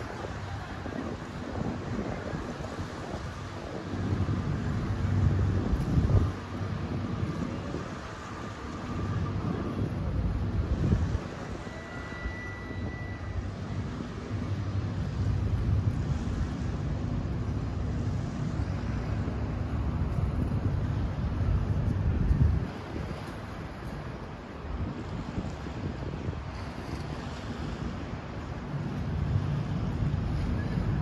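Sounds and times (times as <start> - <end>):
low engine drone: 0.0 - 25.7, 26.6 - 31.0
wind buffeting microphone: 0.0 - 31.0.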